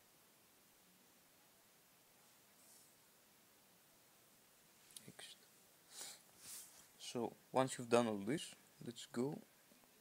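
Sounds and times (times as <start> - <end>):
man whispering: 5.0 - 5.5.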